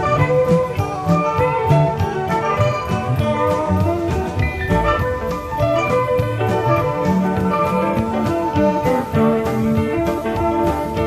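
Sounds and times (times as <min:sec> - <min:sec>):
electric guitar melodic line: 0:00.0 - 0:11.0
live rock band playing: 0:00.0 - 0:11.0.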